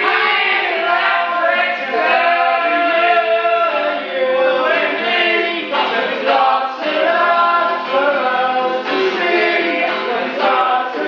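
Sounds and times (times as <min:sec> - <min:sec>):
acoustic guitar strumming: 0:00.0 - 0:11.0
men singing together: 0:00.0 - 0:11.0.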